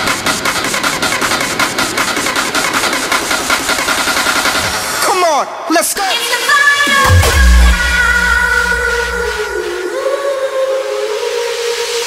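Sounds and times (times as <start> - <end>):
held synth note: 7.0 - 9.9.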